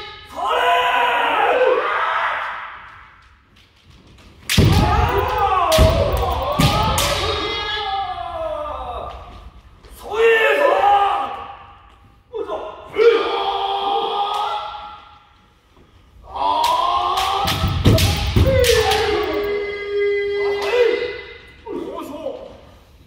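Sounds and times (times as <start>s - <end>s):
fencers shouting: 4.6s - 8.2s, 16.3s - 19.8s
bamboo swords striking armour: 17.4s - 19.3s.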